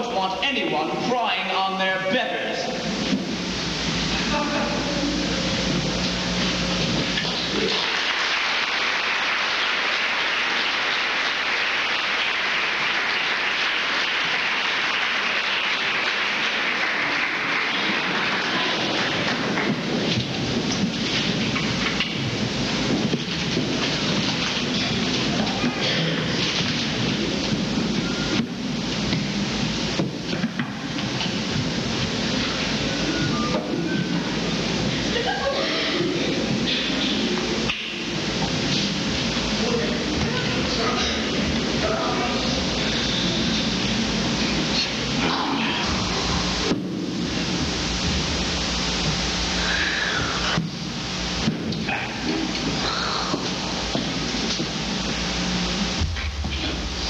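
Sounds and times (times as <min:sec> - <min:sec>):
audience applauding: 0:07.5 - 0:20.1.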